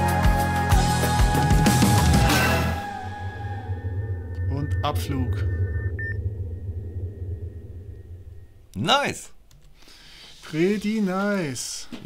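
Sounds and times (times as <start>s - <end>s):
deep rumbling drone: 1.8s - 9.5s
thin steady high tone: 2.9s - 8.8s
short beep: 4.1s - 8.6s.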